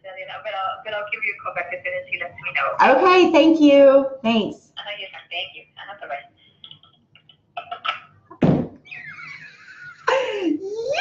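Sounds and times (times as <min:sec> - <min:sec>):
loud thump: 0:08.4 - 0:08.8.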